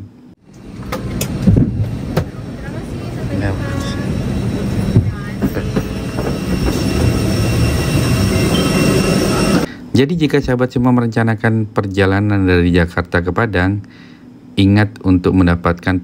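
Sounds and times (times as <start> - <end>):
airliner cabin droning hum: 0.0 - 10.6
passengers murmuring: 1.9 - 9.7.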